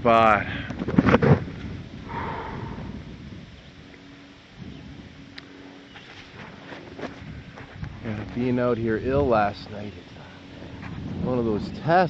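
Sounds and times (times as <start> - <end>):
faint low hum: 0.0 - 12.0
person breathing hard: 2.0 - 3.3.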